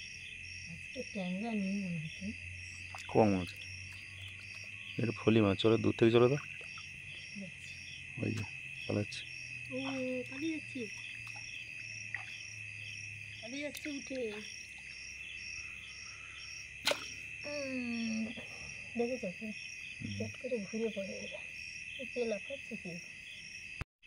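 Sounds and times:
insects trilling: 0:00.0 - 0:23.8
pulsing insect chirp: 0:00.0 - 0:23.8.

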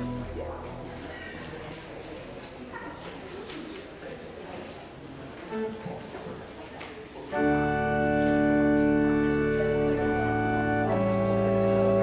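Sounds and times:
soft organ music: 0:00.0 - 0:01.1, 0:07.3 - 0:12.0
low background murmur: 0:00.0 - 0:12.0.

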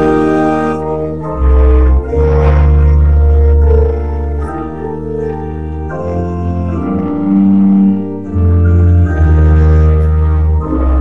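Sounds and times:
organ playing slow chords: 0:00.0 - 0:11.0.

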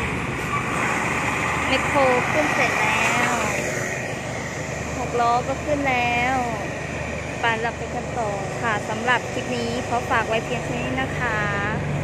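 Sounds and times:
truck engine running: 0:00.0 - 0:12.0
woman's voice: 0:01.7 - 0:03.8, 0:05.0 - 0:06.7, 0:07.4 - 0:12.0.

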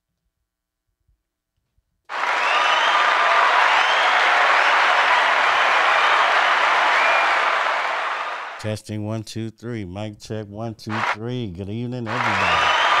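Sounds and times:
crowd applause: 0:02.1 - 0:08.6, 0:10.9 - 0:11.2, 0:12.0 - 0:13.0
faint cheers: 0:02.1 - 0:08.6, 0:12.0 - 0:13.0.

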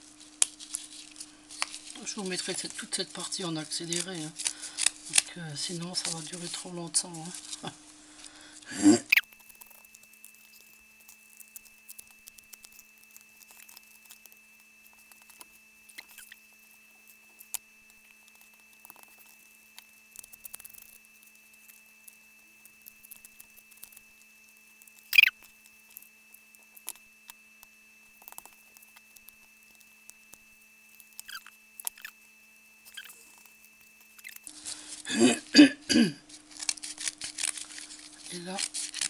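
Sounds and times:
burlap and cardboard rustling: 0:00.0 - 0:08.5
faint high whine: 0:00.0 - 0:39.0.

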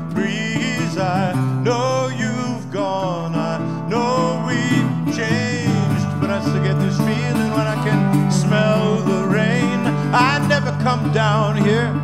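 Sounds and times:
resonator guitar played fingerstyle: 0:00.0 - 0:12.0.

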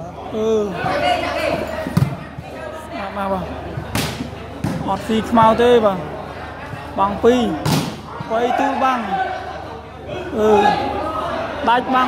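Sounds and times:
spectators chattering: 0:00.0 - 0:12.0
volleyball smack: 0:07.6 - 0:08.1.

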